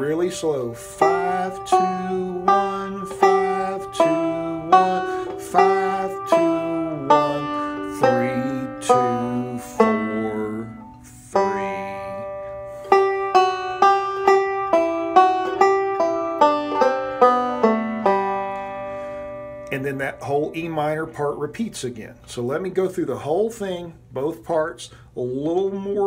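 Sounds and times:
banjo picked note by note: 0.7s - 20.2s.

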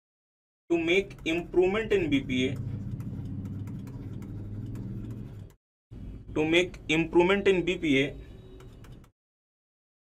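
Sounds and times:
stylus ticking on pen tablet: 0.8s - 5.6s, 8.5s - 9.1s
steady low hum: 1.1s - 6.4s.

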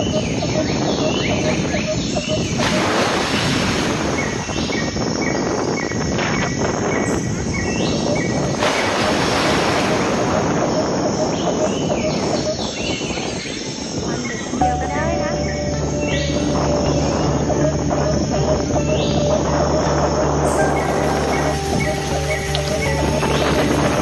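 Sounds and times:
birds chirping: 0.0s - 24.0s
wind buffeting microphone: 0.0s - 24.0s.

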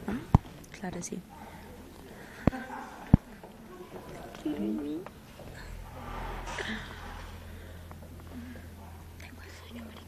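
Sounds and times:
low electrical hum: 0.0s - 10.0s
low murmured voices: 0.0s - 10.0s
people whispering: 0.0s - 10.0s.

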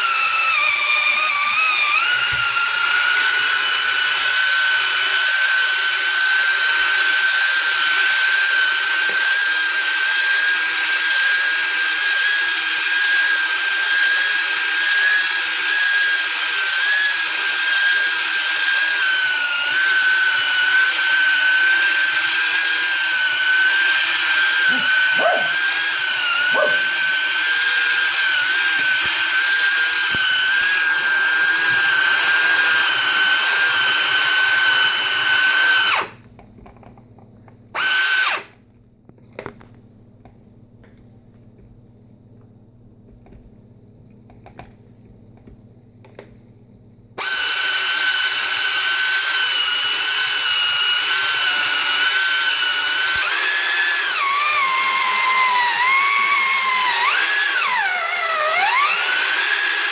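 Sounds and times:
small electric motor whining: 0.0s - 36.2s, 37.8s - 38.5s, 47.2s - 59.9s.

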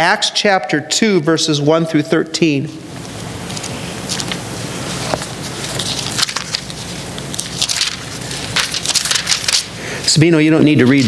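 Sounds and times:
pages rustling: 3.4s - 9.7s.

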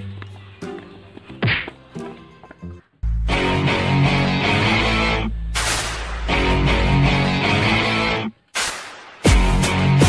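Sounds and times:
quiet background music: 0.0s - 8.5s.

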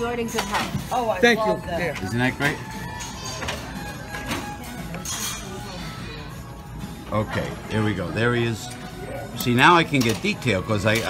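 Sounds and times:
background music: 0.0s - 11.0s
dishes clinking: 1.8s - 6.0s.

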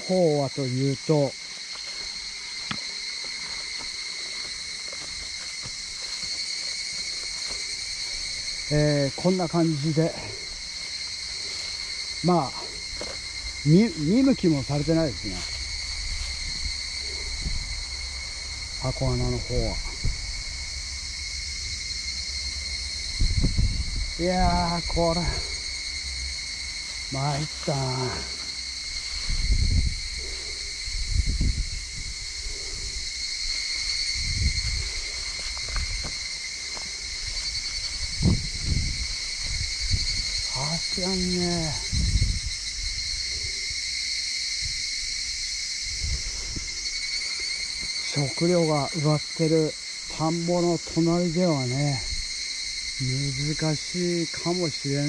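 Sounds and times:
insects buzzing in grass: 0.0s - 55.0s.

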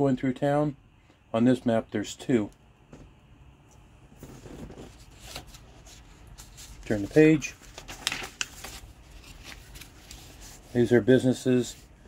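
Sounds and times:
paper rustling and scraping: 4.2s - 12.0s.

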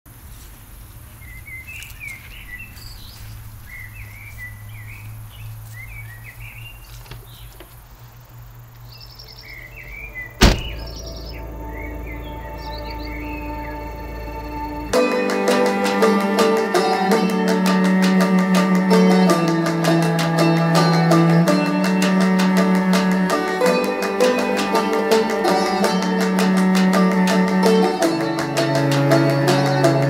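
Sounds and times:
songbirds chirping and trilling: 0.8s - 30.0s
low outdoor rumble: 6.8s - 15.0s
car door shutting: 10.4s - 11.1s.

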